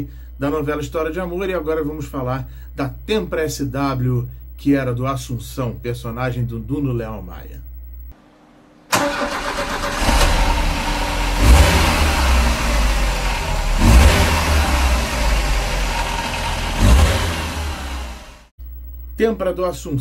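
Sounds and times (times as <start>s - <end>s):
car engine starting and revving: 8.9s - 18.5s.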